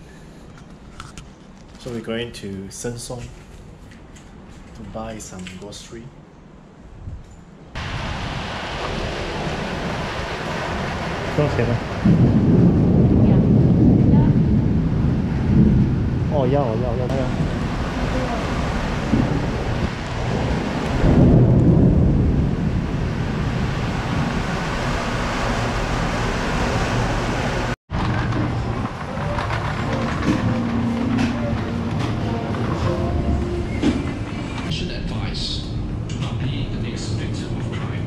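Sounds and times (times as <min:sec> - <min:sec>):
low rumble and hiss: 0:00.0 - 0:38.0
indistinct voices: 0:28.2 - 0:38.0.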